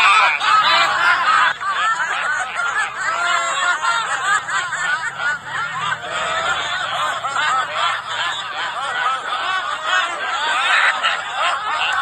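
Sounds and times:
group of people laughing: 0.0s - 12.0s.

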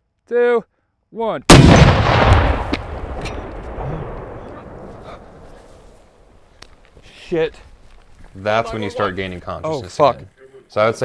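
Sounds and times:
rocket launcher explosion: 1.5s - 5.1s
sharp cracks: 1.5s - 7.0s.

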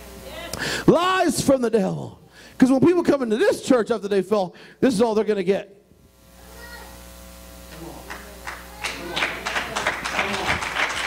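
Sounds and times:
congregation clapping: 7.7s - 11.0s.

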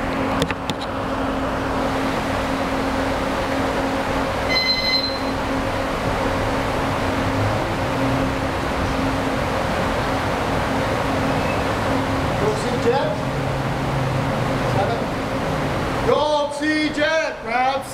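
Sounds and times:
electric fans whirring: 0.0s - 17.9s
brief high-pitched tone: 4.5s - 5.4s.

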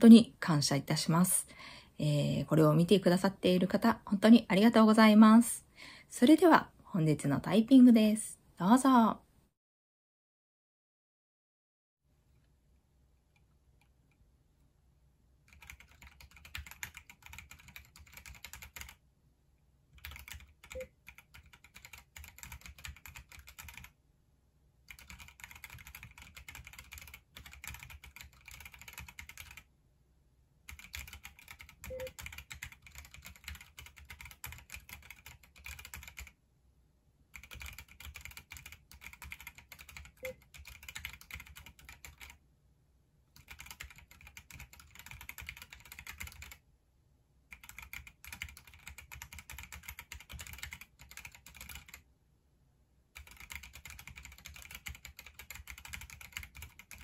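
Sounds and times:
fast mechanical keyboard typing: 15.5s - 19.0s, 20.0s - 23.9s, 24.9s - 29.6s, 30.7s - 36.3s, 37.4s - 42.4s, 43.4s - 46.6s, 47.5s - 52.0s, 53.2s - 57.0s.

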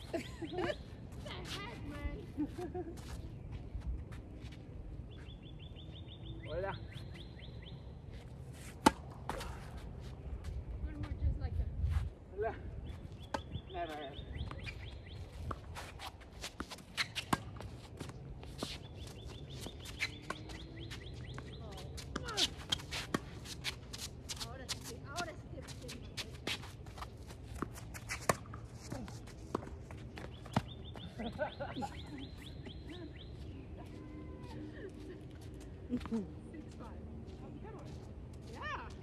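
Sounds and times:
racket hitting tennis ball: 8.6s - 9.8s
tennis ball bouncing: 8.8s - 9.7s, 27.5s - 28.6s
footsteps scuffing on court: 14.4s - 39.0s.

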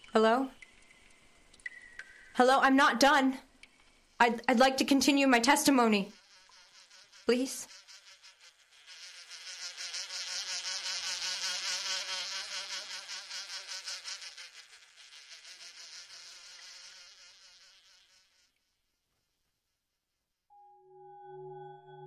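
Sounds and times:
flies buzzing: 3.9s - 18.7s.

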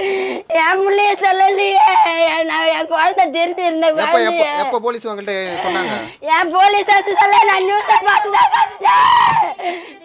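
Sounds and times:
woman crying and wailing: 6.9s - 10.0s.

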